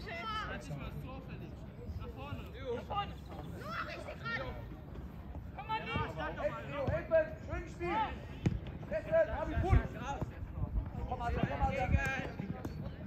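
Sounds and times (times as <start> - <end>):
players and spectators shouting: 0.0 - 1.0, 2.4 - 4.8, 5.4 - 10.0
football being kicked: 8.4 - 8.8.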